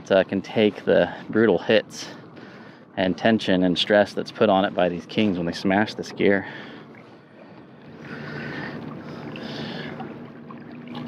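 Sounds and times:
water lapping along a hull: 0.0s - 11.0s.

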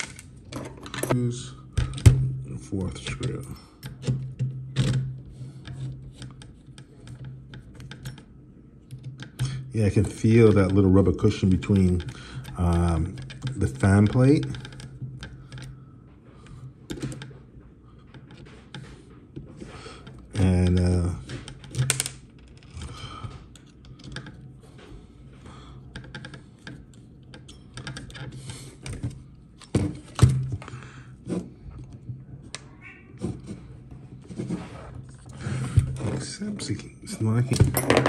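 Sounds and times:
hands handling plastic parts: 0.0s - 1.2s.

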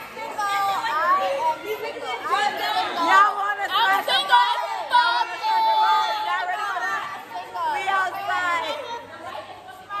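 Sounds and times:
background chatter: 0.0s - 10.0s
women shouting and chattering: 0.0s - 10.0s.

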